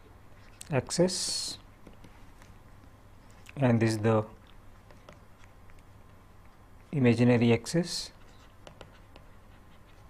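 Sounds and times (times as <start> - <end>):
pen scratching on paper: 8.1 - 10.0.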